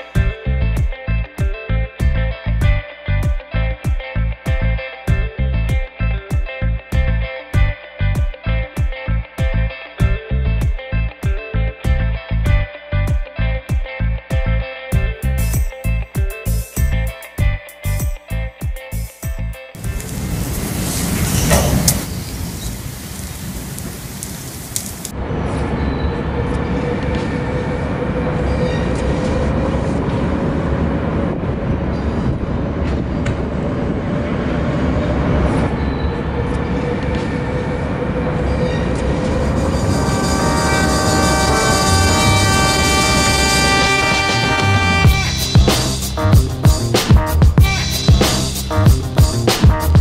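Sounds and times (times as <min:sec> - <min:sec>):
music with pitched pattern: 0:00.0 - 0:20.0, 0:39.4 - 0:50.0
loud noisy wash: 0:19.8 - 0:45.1
steady rumbling noise: 0:19.8 - 0:45.4.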